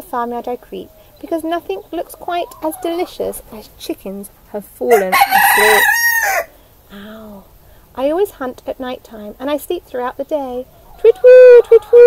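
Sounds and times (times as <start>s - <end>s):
rooster crowing: 4.9s - 6.6s.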